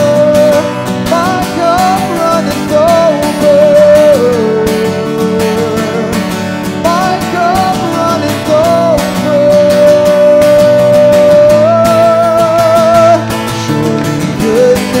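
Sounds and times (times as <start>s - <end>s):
acoustic guitar strumming: 0.0s - 15.0s
man singing: 0.0s - 15.0s.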